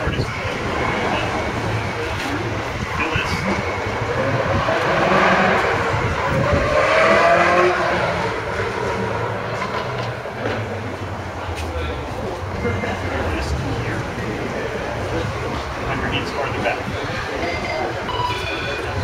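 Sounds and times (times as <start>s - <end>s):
indistinct voices: 0.0s - 19.0s
outdoor noise: 0.0s - 19.0s.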